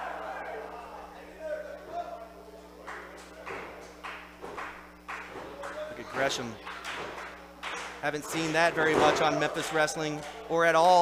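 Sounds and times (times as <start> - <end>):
electrical hum: 0.0 - 11.0
crowd clapping in rhythm: 2.8 - 11.0.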